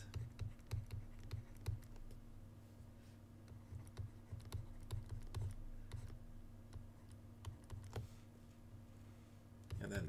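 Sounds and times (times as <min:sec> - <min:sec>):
stylus tapping on pen tablet: 0:00.0 - 0:02.2, 0:03.5 - 0:08.1
low electrical hum: 0:00.0 - 0:10.0.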